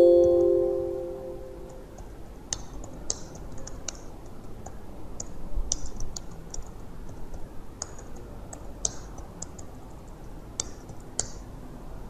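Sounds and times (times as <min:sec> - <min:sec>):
computer alert chime: 0:00.0 - 0:01.8.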